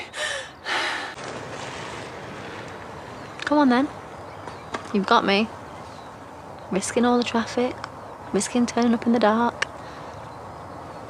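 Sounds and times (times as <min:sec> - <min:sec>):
woman panting: 0:00.0 - 0:01.2
outdoor background hiss: 0:00.0 - 0:11.0.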